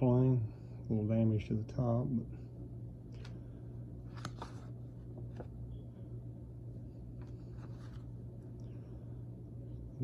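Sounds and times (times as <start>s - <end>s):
low hum: 0.0s - 10.0s
paper photographs rustling: 4.0s - 5.6s, 7.1s - 8.2s.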